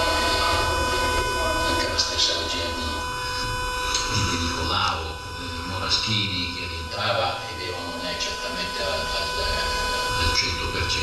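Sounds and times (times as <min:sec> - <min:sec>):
electrical hum and whine: 0:00.0 - 0:11.0
indistinct voice: 0:00.0 - 0:11.0.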